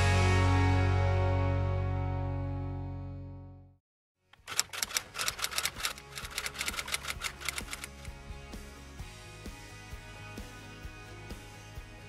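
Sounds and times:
typewriter key clacks: 4.4s - 8.1s.

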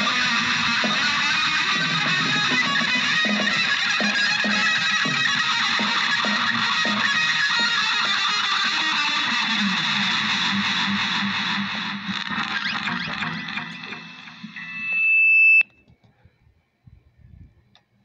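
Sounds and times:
distorted electric guitar: 0.0s - 15.6s
high held tone: 0.0s - 15.8s.

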